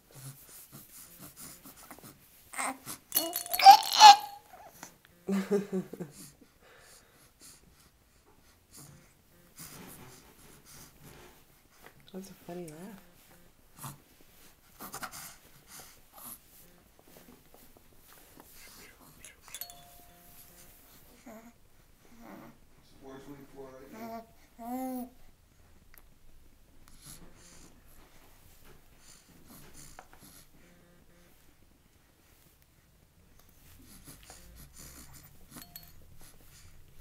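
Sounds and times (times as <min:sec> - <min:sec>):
baby breathing softly: 0:06.1 - 0:12.0, 0:13.8 - 0:16.6, 0:18.0 - 0:19.8, 0:26.8 - 0:31.3, 0:33.4 - 0:37.0
bell-like chime: 0:19.4 - 0:21.0, 0:35.6 - 0:36.1.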